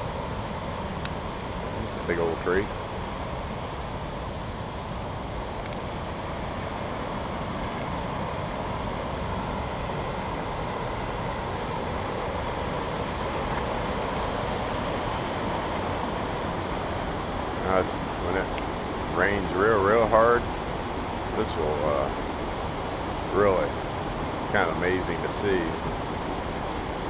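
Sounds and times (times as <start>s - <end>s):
water rushing over weir: 0.0s - 27.0s.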